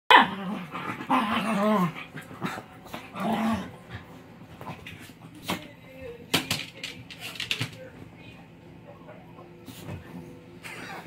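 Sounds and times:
puppy growling barks: 0:00.1 - 0:03.8.

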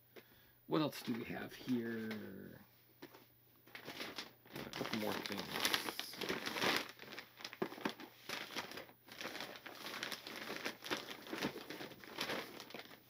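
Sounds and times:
plastic packaging crinkling: 0:03.0 - 0:13.0.

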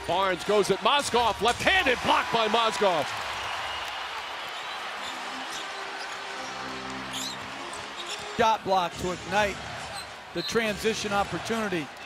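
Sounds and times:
arena crowd noise: 0:00.0 - 0:12.0
arena music sustained chord: 0:05.2 - 0:07.9.

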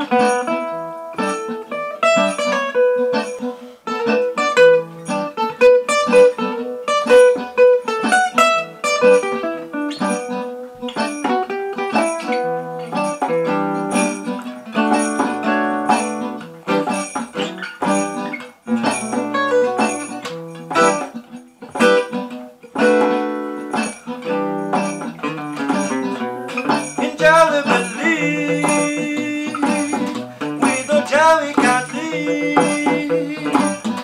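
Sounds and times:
acoustic guitar picking chords: 0:00.0 - 0:34.0.

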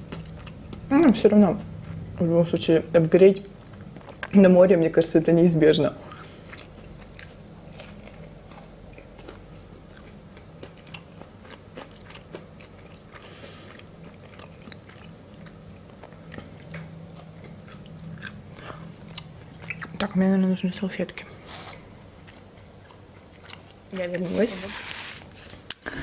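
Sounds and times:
chewing crunchy chips: 0:00.0 - 0:00.9, 0:06.0 - 0:20.1, 0:22.2 - 0:24.4
steady low hum: 0:00.0 - 0:26.0.

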